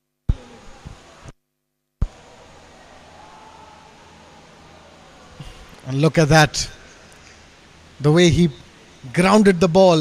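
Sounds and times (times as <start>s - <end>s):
faint steady hiss: 0.3s - 10.0s.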